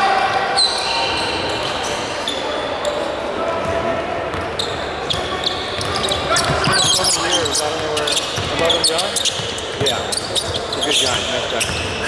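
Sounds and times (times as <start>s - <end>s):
murmur of voices: 0.0s - 12.0s
sneaker squeaks on hardwood: 4.3s - 12.0s.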